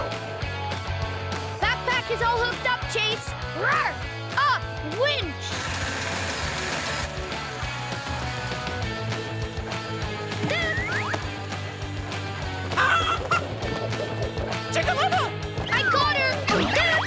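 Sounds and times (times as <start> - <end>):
background music: 0.0 - 17.0
cartoon chicken clucking and squawking: 12.8 - 14.3.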